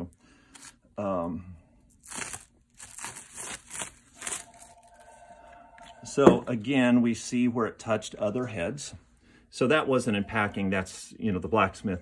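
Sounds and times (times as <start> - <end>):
plastic wrap crinkling and tearing: 1.9 - 5.2.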